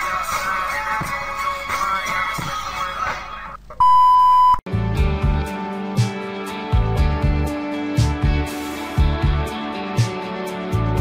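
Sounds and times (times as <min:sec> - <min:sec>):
music with low rhythmic beats: 0:00.0 - 0:03.2, 0:04.7 - 0:11.0
electronic beep: 0:03.8 - 0:04.6
intro music: 0:04.7 - 0:11.0.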